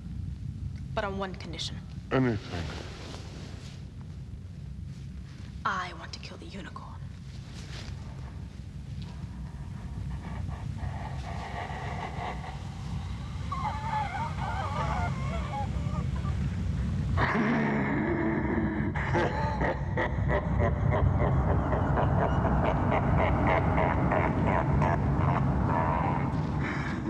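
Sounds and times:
deep rumbling film score: 0.0s - 27.0s
deep demonic male laugh: 9.2s - 27.0s.

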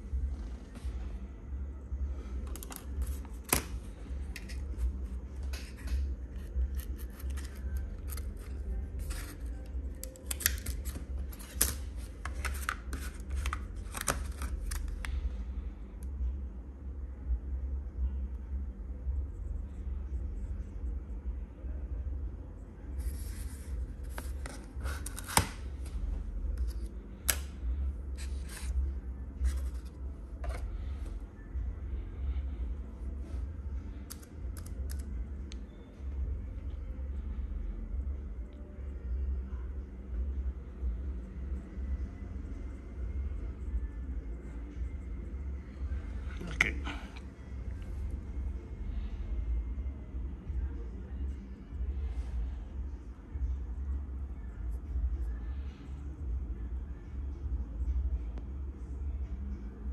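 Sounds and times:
steady low hum: 0.0s - 59.9s
steady low rumble: 0.0s - 59.9s.

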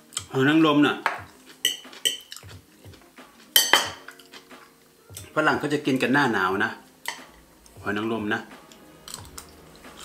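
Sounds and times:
cutlery clinking on plates: 1.0s - 2.6s, 3.5s - 4.5s.

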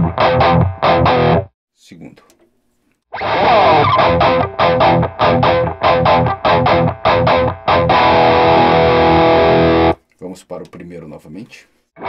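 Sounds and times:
distorted electric guitar chords: 0.0s - 1.5s, 3.2s - 10.0s.

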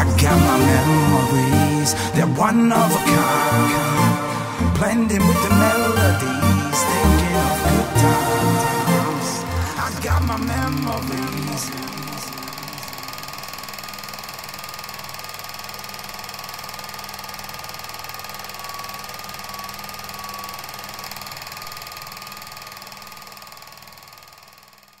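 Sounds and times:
film projector clattering: 9.1s - 25.0s.

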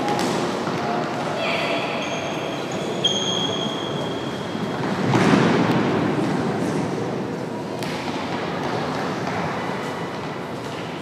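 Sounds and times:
murmur of crowd voices: 0.0s - 11.0s
high drawn-out squeaking: 1.9s - 4.7s.

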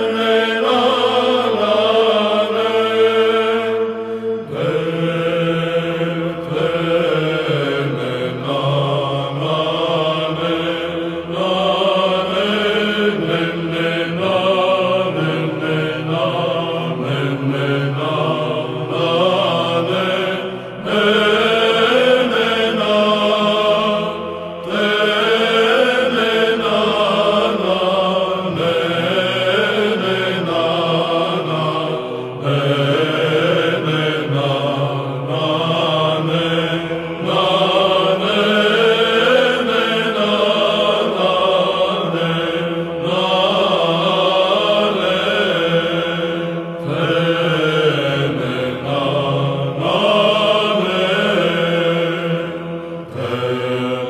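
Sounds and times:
held vocal drone: 0.0s - 54.0s
male choir chanting: 0.0s - 54.0s.

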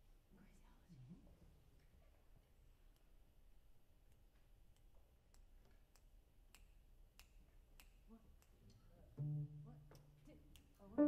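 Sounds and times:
low double bass note: 9.2s - 9.8s.

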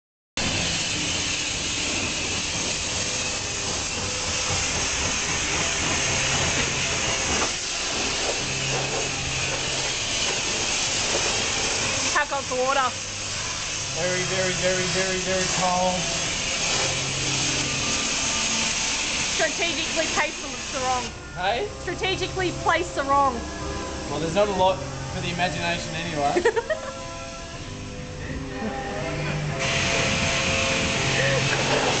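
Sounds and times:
pressure washer spraying water: 0.4s - 28.1s, 29.5s - 32.0s.

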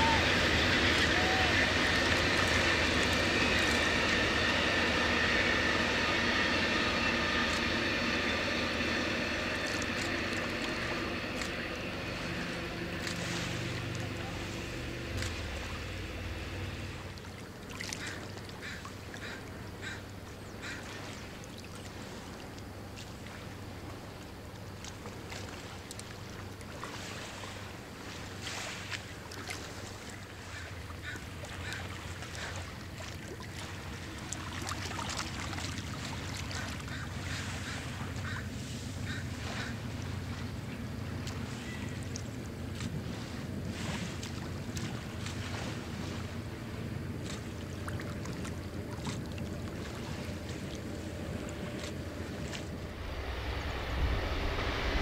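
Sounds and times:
train wheels rumbling: 0.0s - 20.3s, 33.7s - 55.0s
high steady whine: 0.0s - 20.4s, 44.0s - 55.0s.

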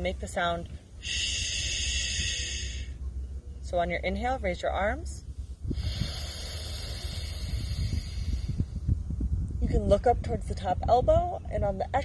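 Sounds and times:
person inhaling through mouth: 1.0s - 3.0s, 5.7s - 8.8s
wind on microphone: 5.0s - 12.0s.

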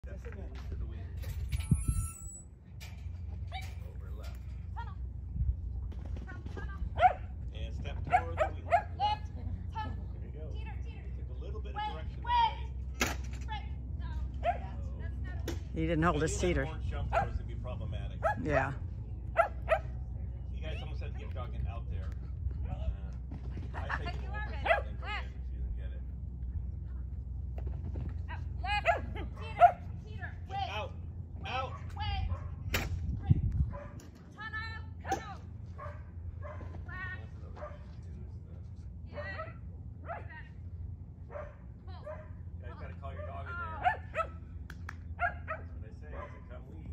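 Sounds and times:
wind rumble on microphone: 0.1s - 2.4s, 4.5s - 9.7s, 31.3s - 38.6s
dog barking and yipping: 7.0s - 7.3s, 8.1s - 9.0s, 17.1s - 17.4s, 19.4s - 20.0s, 28.8s - 29.9s, 31.7s - 32.6s, 35.8s - 36.7s, 41.3s - 42.3s, 45.2s - 46.4s
dog barking in high yips: 7.0s - 7.3s, 19.4s - 20.0s, 28.8s - 29.9s, 43.8s - 44.4s, 45.2s - 46.4s.

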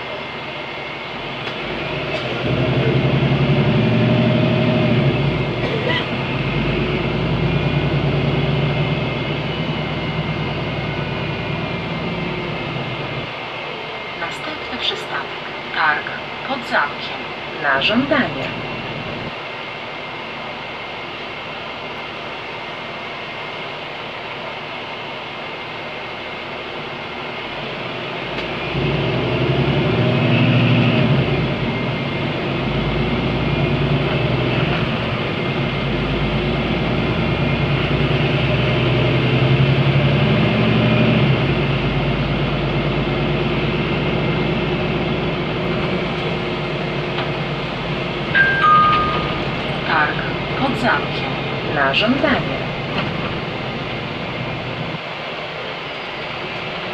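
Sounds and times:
bus engine: 0.0s - 56.9s
two-note descending chime: 48.4s - 49.8s.

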